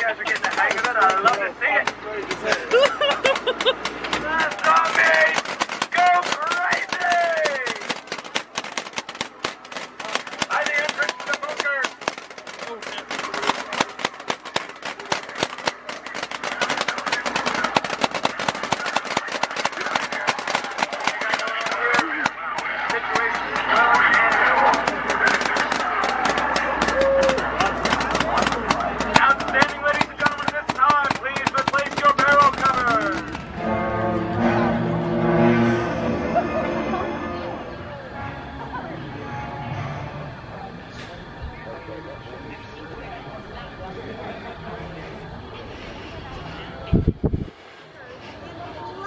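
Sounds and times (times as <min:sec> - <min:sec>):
paintball markers firing rapidly: 0:00.0 - 0:33.5
voices calling out: 0:00.0 - 0:33.6.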